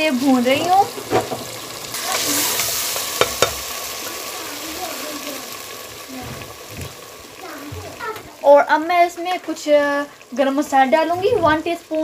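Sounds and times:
vegetables sizzling in oil: 0:00.0 - 0:12.0
spoon knocking against pot: 0:03.2 - 0:03.6.

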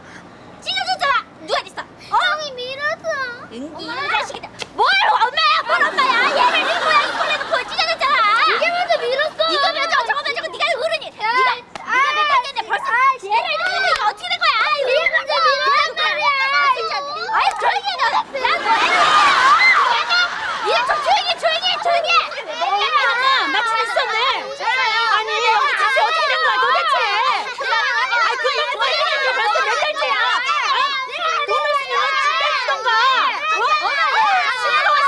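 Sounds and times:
woman and children shouting: 0:03.9 - 0:35.0.

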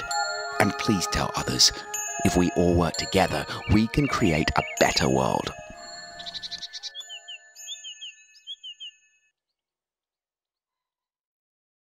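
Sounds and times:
soundtrack music held notes: 0:00.0 - 0:07.3
high bird chirps: 0:03.0 - 0:09.4.

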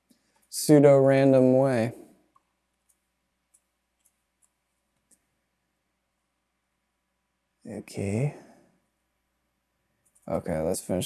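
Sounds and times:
computer mouse clicks: 0:02.3 - 0:05.3, 0:10.0 - 0:10.4.

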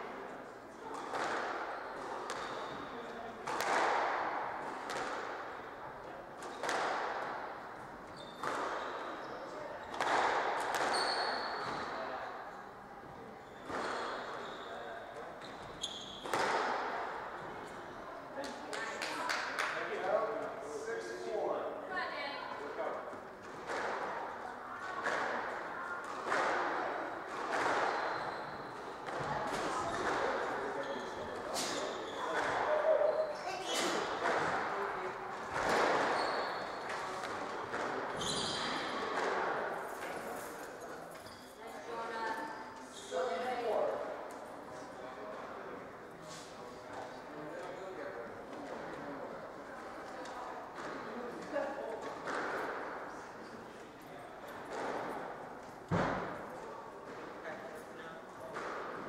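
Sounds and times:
squash ball striking rackets and walls: 0:00.9 - 0:02.8, 0:03.4 - 0:05.6, 0:06.4 - 0:07.6, 0:08.2 - 0:09.2, 0:09.8 - 0:12.0, 0:13.6 - 0:14.4, 0:16.2 - 0:17.1, 0:23.4 - 0:24.3, 0:24.9 - 0:28.1, 0:29.0 - 0:32.9, 0:33.6 - 0:40.2, 0:52.0 - 0:53.0, 0:54.6 - 0:56.4
sneaker squeaks on wooden floor: 0:01.7 - 0:03.0, 0:08.1 - 0:12.0, 0:13.4 - 0:16.6, 0:27.6 - 0:34.2, 0:35.6 - 0:37.3, 0:38.1 - 0:39.1, 0:41.1 - 0:41.8, 0:42.4 - 0:43.5.

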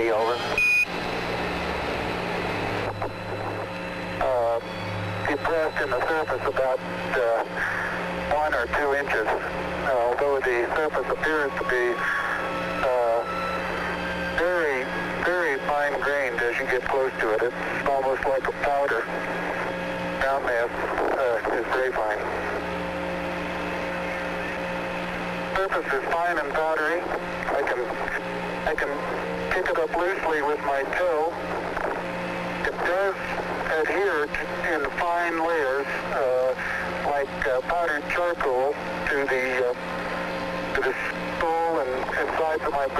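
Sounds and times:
radio static hiss: 0:00.0 - 0:00.8, 0:01.7 - 0:42.9
low steady hum: 0:00.0 - 0:42.9.

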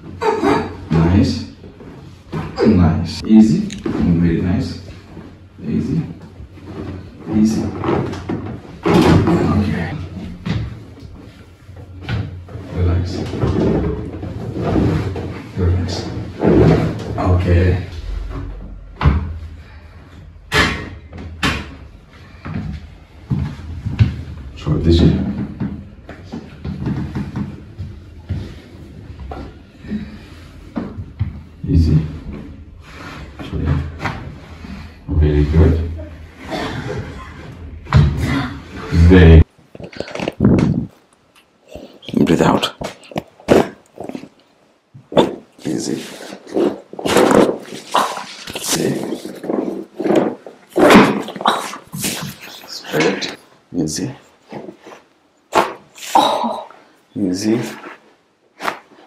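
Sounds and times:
rustling movement: 0:38.6 - 0:56.0.

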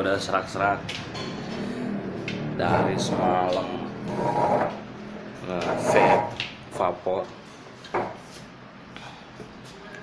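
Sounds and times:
man speaking hoarsely: 0:02.6 - 0:03.9.

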